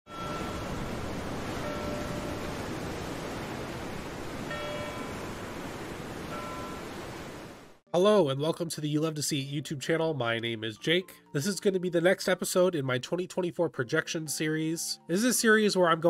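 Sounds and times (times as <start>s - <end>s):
rough sea waves rushing: 0.1s - 7.8s.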